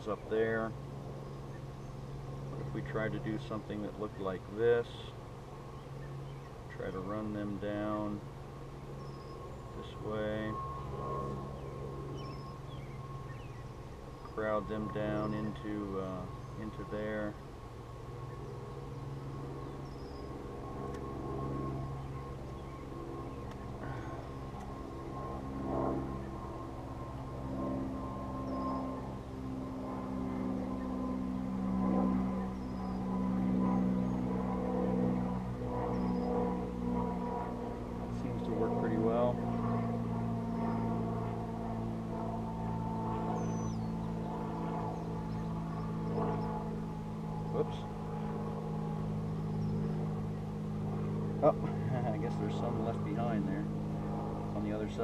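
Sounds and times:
bees buzzing: 0.0 - 55.0
faint bird chirps: 8.8 - 10.0, 10.6 - 15.6, 18.2 - 20.4, 28.4 - 29.1, 43.3 - 44.3.

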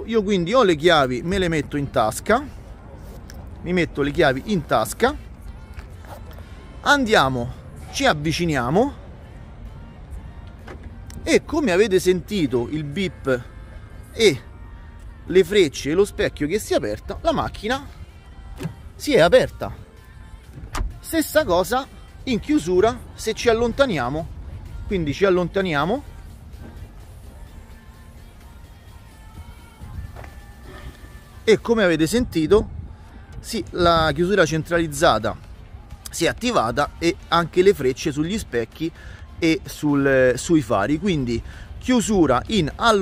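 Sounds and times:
background music: 0.0 - 43.0
car door locks clunk: 10.4 - 11.0, 18.5 - 19.0, 20.5 - 21.0.

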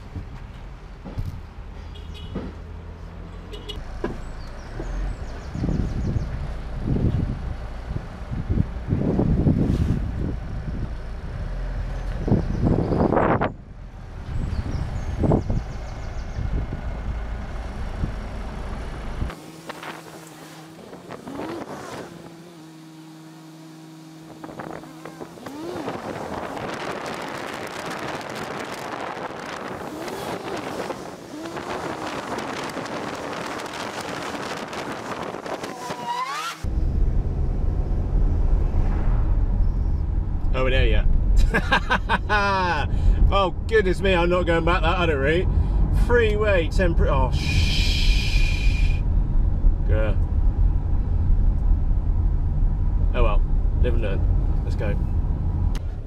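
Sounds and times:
road and traffic noise: 0.0 - 56.0
wind buffeting camera: 5.2 - 11.0, 12.0 - 17.2, 24.3 - 41.4.

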